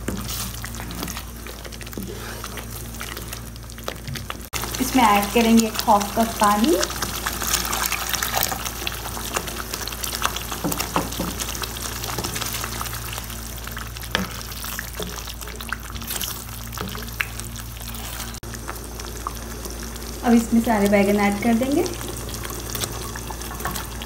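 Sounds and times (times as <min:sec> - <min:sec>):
spatula stirring in pan: 0:00.0 - 0:18.6
sauce sizzling and bubbling: 0:00.0 - 0:24.0.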